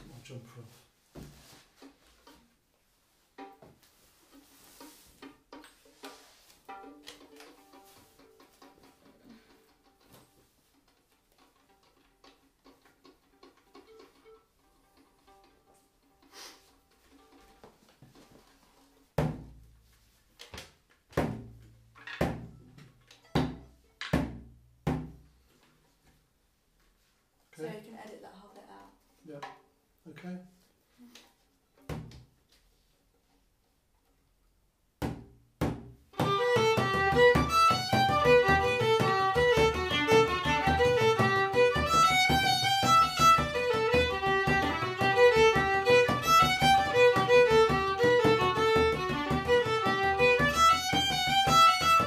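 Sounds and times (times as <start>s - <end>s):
soft fiddle notes: 36.1s - 52.0s.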